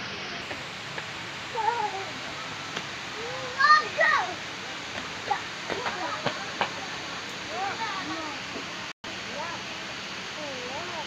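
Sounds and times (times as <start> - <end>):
background hiss: 0.0 - 11.0
child's wordless vocal call: 3.2 - 4.4.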